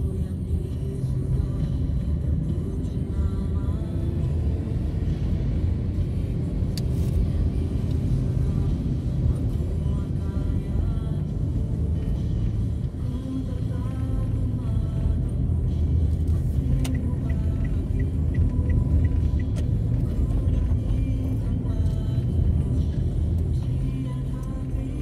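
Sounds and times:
vehicle engine and road rumble: 0:00.0 - 0:25.0.

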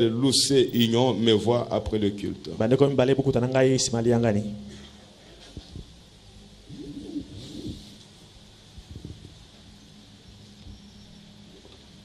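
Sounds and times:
steady low hum: 0:00.0 - 0:12.0
rustle: 0:04.7 - 0:12.0
microphone handling knocks and creaks: 0:08.8 - 0:09.4.

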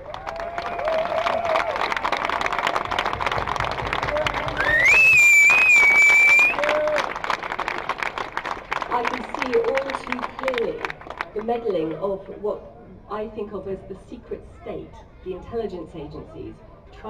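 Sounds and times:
crowd applauding: 0:00.0 - 0:11.9
rising whistle: 0:04.6 - 0:06.6.

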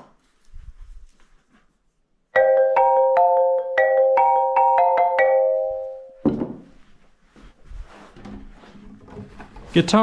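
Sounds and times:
faint scratchy rustling: 0:00.2 - 0:02.2, 0:06.7 - 0:10.0
xylophone notes: 0:02.4 - 0:06.2.

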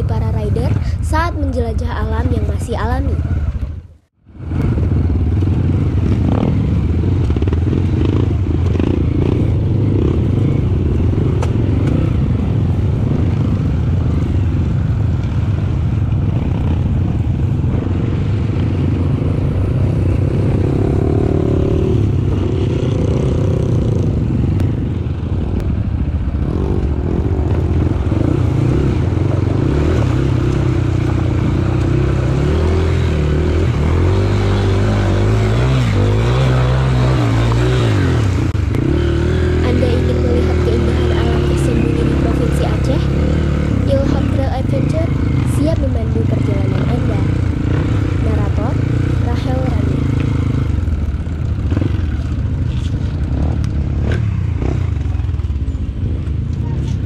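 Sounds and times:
clatter and scraping over rough ground: 0:49.3 - 0:57.0.

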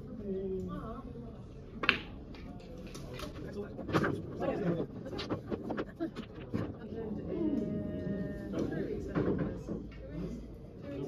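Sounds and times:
indistinct background talk: 0:00.0 - 0:11.0.

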